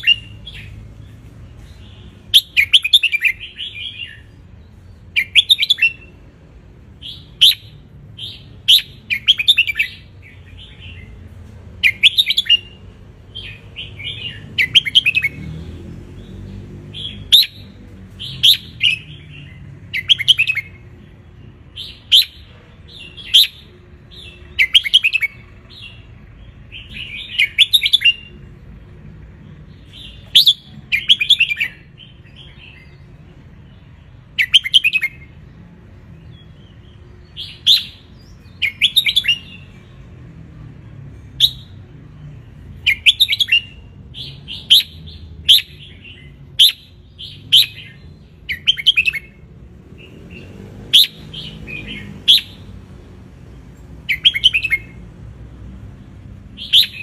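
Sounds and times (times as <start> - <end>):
bulbul singing warbled phrases: 42.8 - 52.8.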